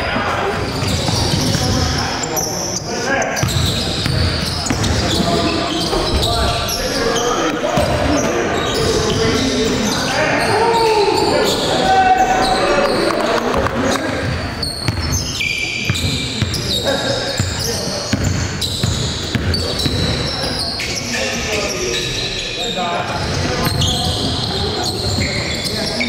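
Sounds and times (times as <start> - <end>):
players calling out: 0.0 - 26.0.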